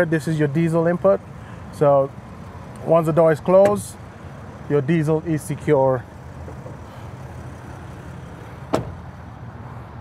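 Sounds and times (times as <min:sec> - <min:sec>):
van door slamming: 0:08.6 - 0:09.0.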